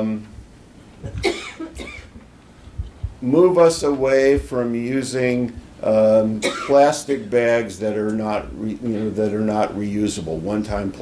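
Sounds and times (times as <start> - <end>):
person coughing: 1.0 - 2.2, 6.4 - 6.8.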